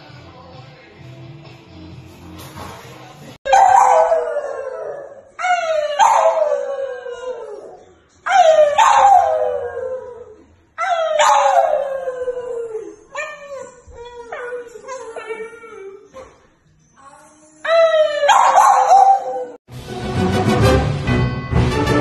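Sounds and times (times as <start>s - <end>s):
dog howling: 3.5s - 16.0s, 17.6s - 19.6s.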